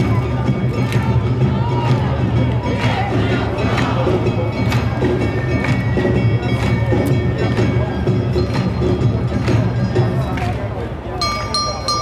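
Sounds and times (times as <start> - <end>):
drums: 0.0 - 12.0
festival band music: 0.0 - 12.0
shamisen: 3.6 - 10.1, 11.2 - 12.0
ringing hand gong: 11.2 - 12.0.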